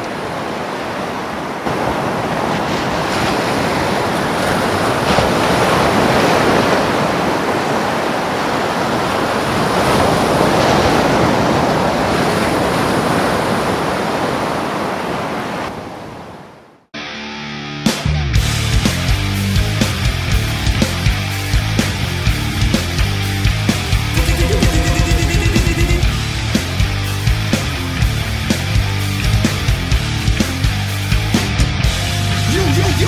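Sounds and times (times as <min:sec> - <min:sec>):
heavy rain: 0:00.0 - 0:13.2
wind: 0:00.0 - 0:16.9.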